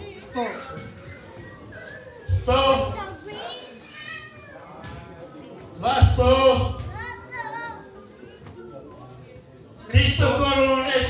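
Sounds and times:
murmur in a large hall: 0:00.0 - 0:11.0.

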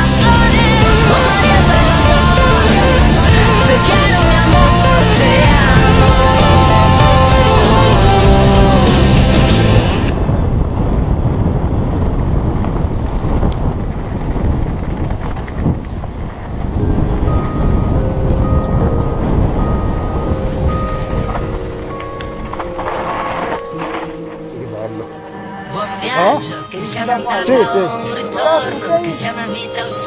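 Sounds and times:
bike tyres rumbling on dirt: 0:00.0 - 0:25.6
wind buffeting microphone: 0:09.5 - 0:25.8.

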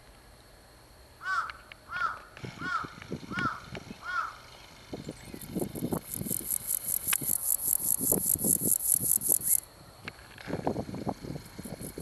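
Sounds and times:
bird calling: 0:01.2 - 0:09.6.

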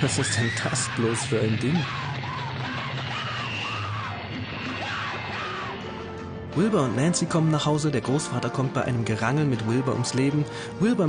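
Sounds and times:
horror film music: 0:00.0 - 0:11.0.

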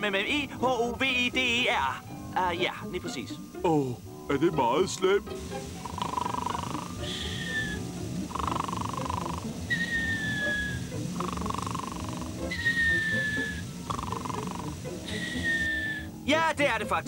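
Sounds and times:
quiet background music: 0:00.0 - 0:17.0
cartoon snoring with whistle: 0:05.7 - 0:16.2.

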